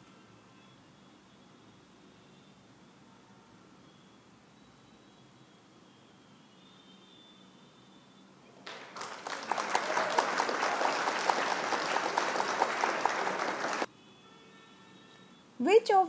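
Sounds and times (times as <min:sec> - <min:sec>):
crowd applause: 0:08.6 - 0:13.9.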